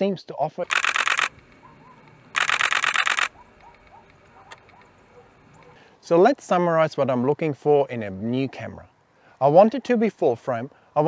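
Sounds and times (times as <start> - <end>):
camera shutter bursts: 0.7 - 5.0.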